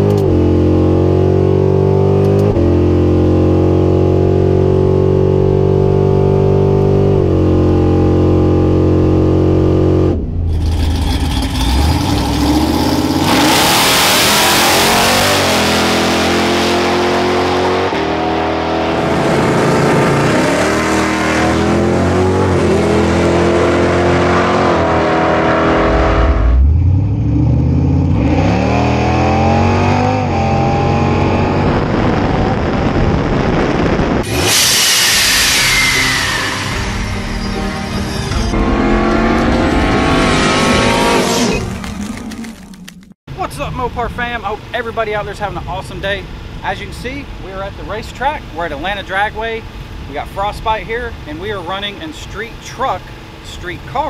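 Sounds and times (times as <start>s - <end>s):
car engine revving through gears: 0.0s - 43.2s.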